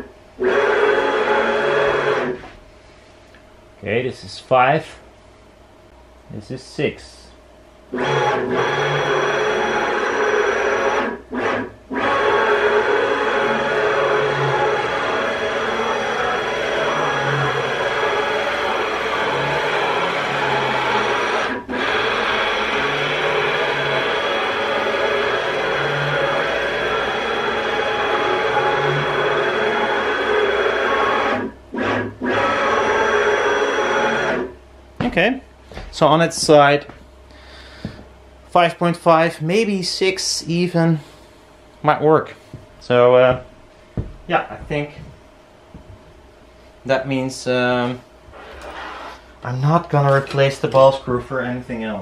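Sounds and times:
ball screw mechanical whine: 0.0s - 2.6s, 7.9s - 34.6s, 48.3s - 51.0s.

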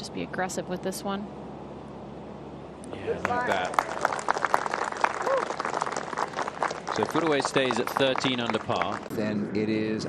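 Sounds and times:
small crowd clapping: 3.0s - 9.1s.

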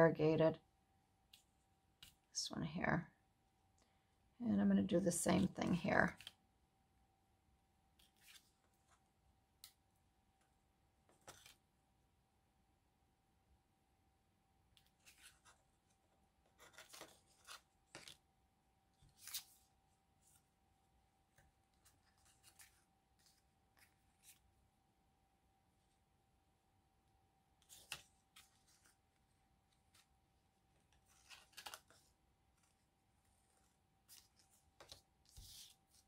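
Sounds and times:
paper rustling: 8.0s - 9.0s, 11.1s - 11.6s, 14.8s - 18.2s, 19.0s - 20.4s, 21.7s - 24.5s, 27.6s - 30.2s, 30.8s - 36.0s.

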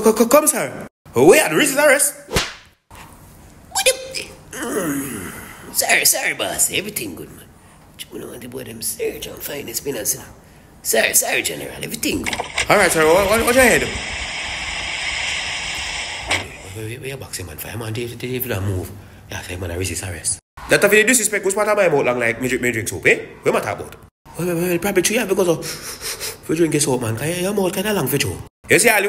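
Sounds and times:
sharp whip-like crack: 2.3s - 2.8s
person speaking: 11.0s - 14.1s
steady hiss: 12.6s - 17.1s.

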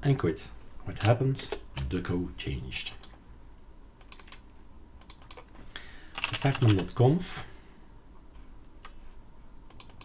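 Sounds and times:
computer keyboard typing: 4.0s - 4.4s, 5.0s - 5.5s, 6.1s - 6.9s, 9.7s - 10.0s.

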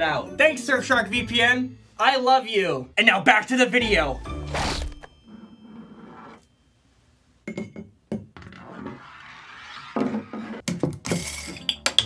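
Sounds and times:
glass bottle clinks and knocks: 7.4s - 8.3s.

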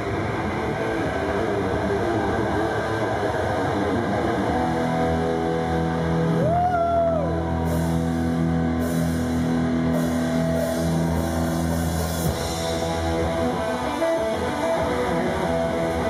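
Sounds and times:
distorted electric guitars: 0.0s - 16.0s
rock band playing live: 0.0s - 16.0s.

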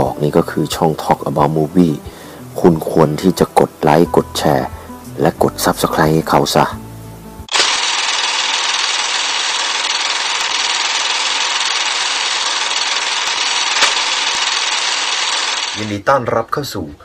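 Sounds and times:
loud steady hissing: 6.8s - 16.0s
single click: 7.5s - 7.8s, 13.8s - 14.0s.

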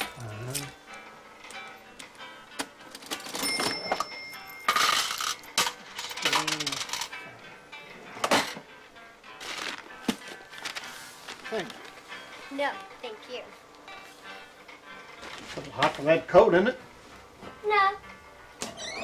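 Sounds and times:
cash drawer opening: 3.0s - 7.1s
cash register keys clacking: 3.0s - 7.2s
cash register bell ringing: 3.1s - 7.2s
paper handling: 9.4s - 12.0s.

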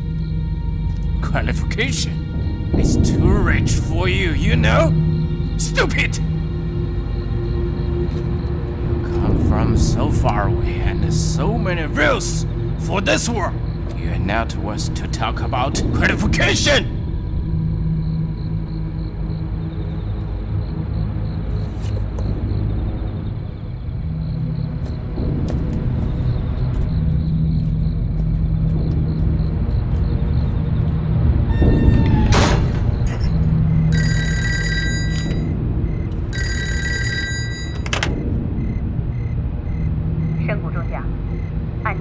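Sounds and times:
low droning film score: 0.0s - 42.0s
high bell-like ringing: 33.9s - 35.5s, 36.3s - 37.9s.

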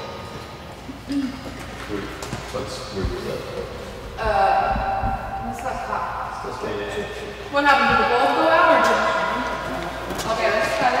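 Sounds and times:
indistinct voices: 1.0s - 11.0s.

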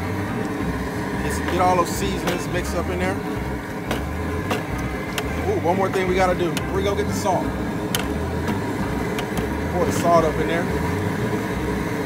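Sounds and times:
steady low rumble: 0.0s - 12.0s
paddle knocking against metal basket: 3.9s - 5.3s.

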